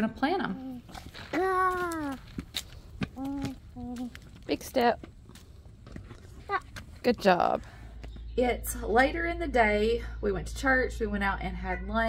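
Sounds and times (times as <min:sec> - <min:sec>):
light footsteps on brick steps: 0:00.9 - 0:08.4.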